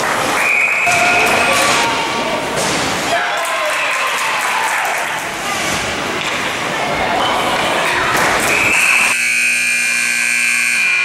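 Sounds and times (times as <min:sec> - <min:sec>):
scoreboard horn buzzing blast: 0:09.0 - 0:11.0.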